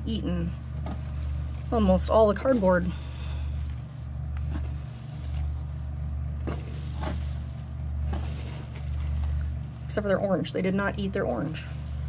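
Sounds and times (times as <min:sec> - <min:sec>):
hands digging through compost: 0:00.0 - 0:12.0
low hum: 0:00.0 - 0:12.0.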